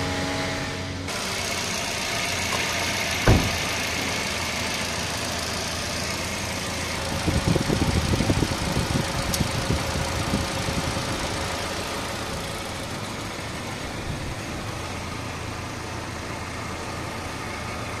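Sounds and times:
car engine idling: 1.0s - 18.0s
uneven low thumps: 3.2s - 3.8s.

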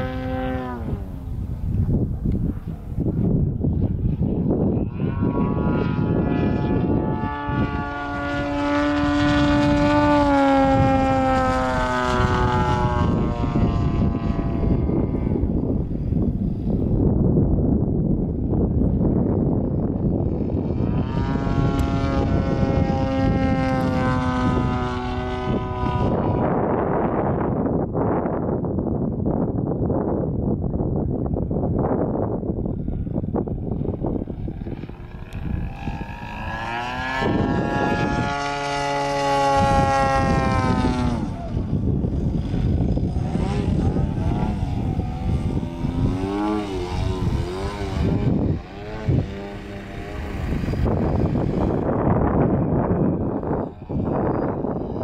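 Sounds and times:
propeller plane engine droning: 0.0s - 55.0s
steady rushing rumble: 0.0s - 55.0s.

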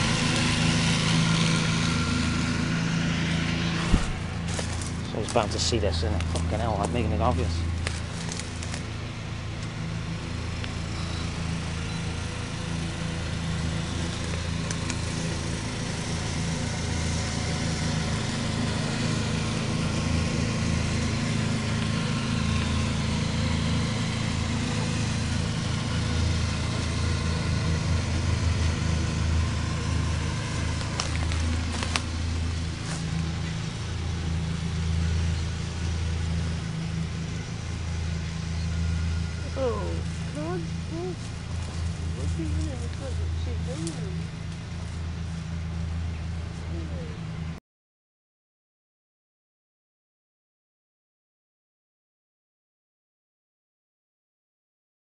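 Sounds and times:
ride-on mower engine humming: 0.0s - 47.6s.

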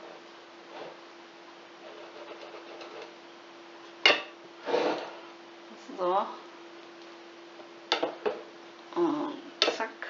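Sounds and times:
low steady hum: 0.0s - 10.0s
knife scraping: 1.8s - 3.2s.

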